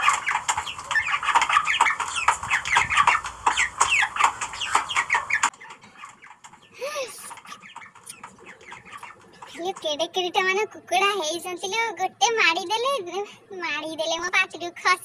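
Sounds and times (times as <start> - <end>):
hens clucking: 0.0 - 13.1.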